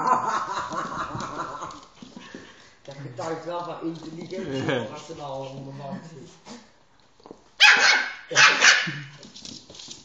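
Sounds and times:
dog barking sharply: 7.6 - 9.0.

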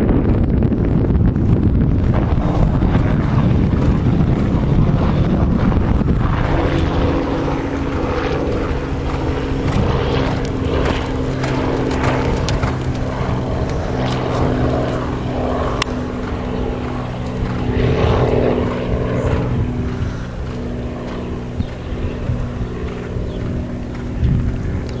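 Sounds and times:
motor humming: 0.0 - 25.0.

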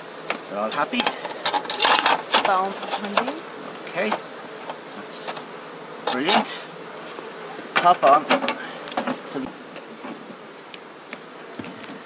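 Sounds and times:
honeybees humming: 0.0 - 12.0.

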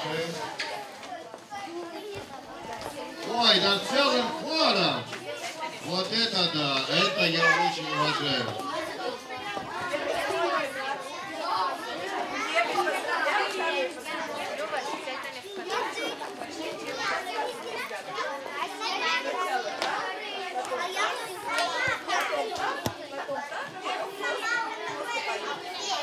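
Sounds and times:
children chattering and calling out: 0.0 - 26.0.

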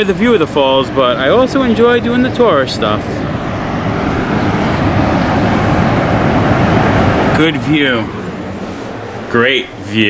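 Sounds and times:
steady low rushing noise: 0.0 - 10.0.

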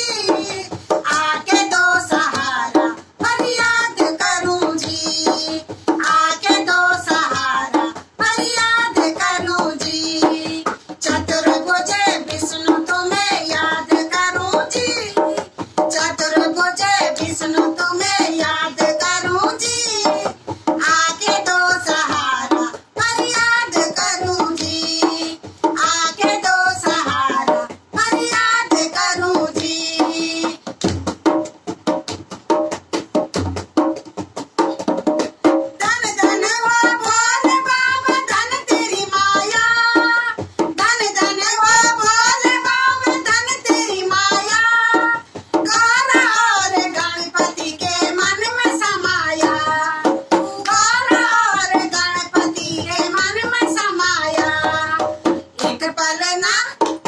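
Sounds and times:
women singing devotional song: 0.0 - 31.0, 35.4 - 57.0
hand drum strokes: 0.0 - 57.0.

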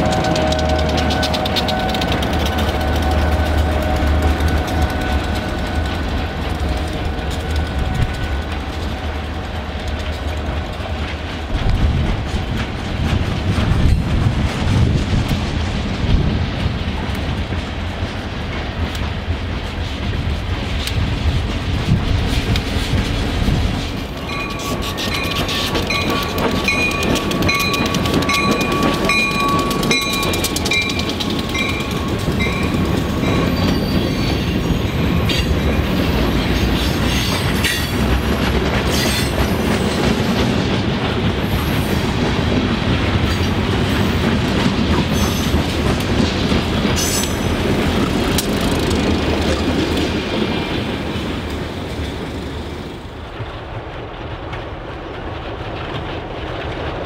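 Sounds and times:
wheels clicking and clacking: 0.0 - 53.2
diesel train engine: 0.0 - 57.0
freight cars rumbling: 0.0 - 57.0.

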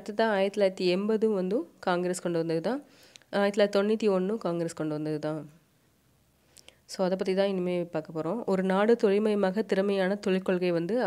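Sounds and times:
woman speaking: 0.0 - 5.6, 6.9 - 11.0.

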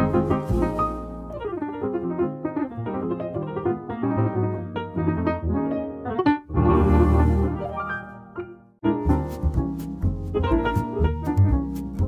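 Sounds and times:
jazz piano music: 0.0 - 12.0.

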